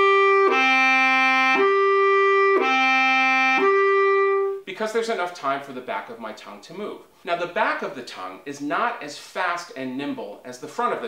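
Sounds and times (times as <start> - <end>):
bass clarinet slow notes: 0.0 - 4.6.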